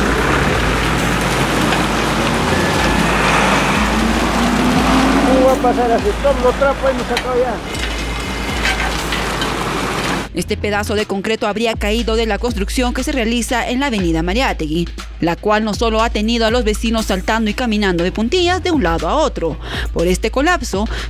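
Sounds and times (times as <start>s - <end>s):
sewage water rushing: 0.0s - 10.3s.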